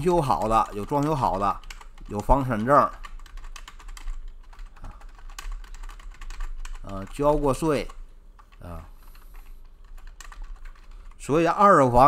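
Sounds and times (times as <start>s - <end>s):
computer keyboard typing: 0.0s - 11.3s.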